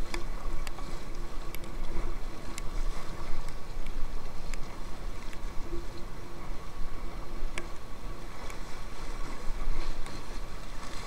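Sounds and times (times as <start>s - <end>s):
river water rushing and splashing: 0.0s - 11.0s.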